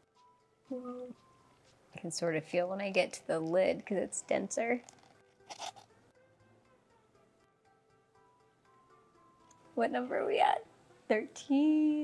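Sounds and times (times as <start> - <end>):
styrofoam crunching scrape: 5.5 - 5.8.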